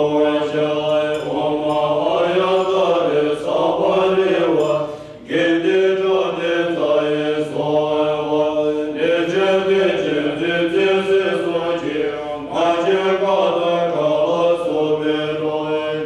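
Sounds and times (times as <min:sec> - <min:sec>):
monks chanting in unison: 0:00.0 - 0:16.0.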